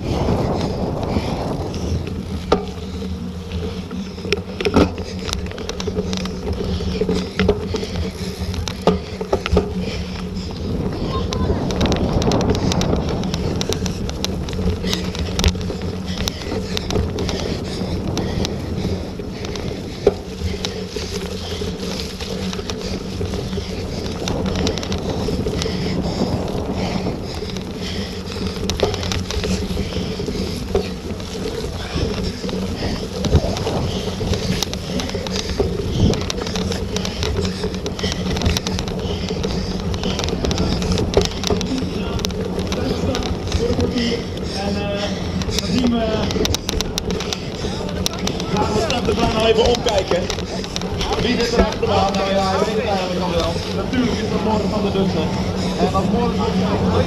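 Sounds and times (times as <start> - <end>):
bicycle rumbling over grass: 0.0 - 57.0
bike knocks and rattles: 0.0 - 57.0
steady low hum: 0.0 - 57.0
wind on microphone: 0.0 - 57.0.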